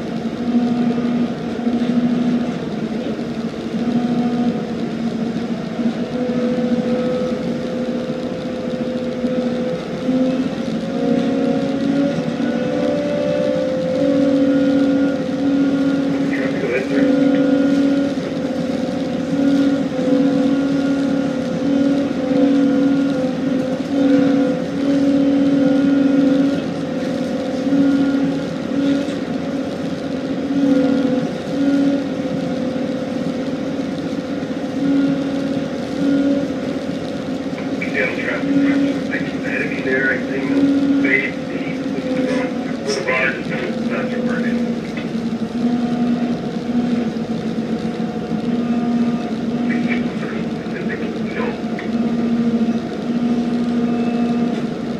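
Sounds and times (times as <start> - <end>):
tugboat diesel engine drone: 0.0 - 54.9.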